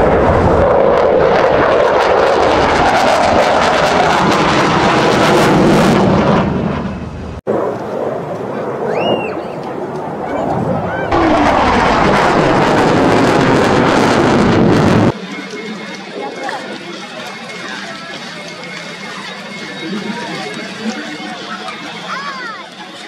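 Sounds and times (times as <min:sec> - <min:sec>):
jet engine roar: 0:00.0 - 0:17.2
onlookers chatting: 0:07.7 - 0:11.8, 0:15.1 - 0:23.0.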